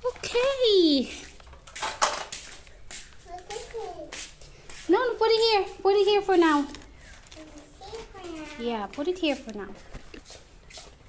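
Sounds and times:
rustling and scraping: 0:00.0 - 0:11.0.

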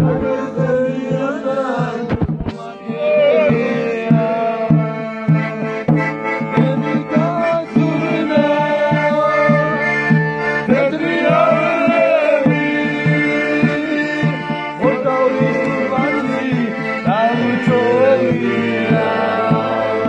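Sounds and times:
button accordion folk tune: 0:00.0 - 0:20.0
men singing along: 0:00.0 - 0:20.0.

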